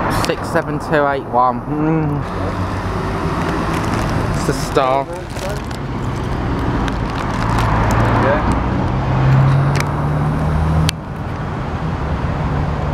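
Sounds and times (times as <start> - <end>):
vehicle engine hum: 0.0 - 12.9.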